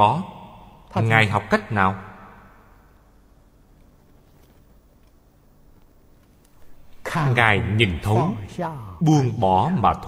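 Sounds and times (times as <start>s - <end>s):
faint background hiss: 0.0s - 10.0s
person speaking: 6.6s - 10.0s.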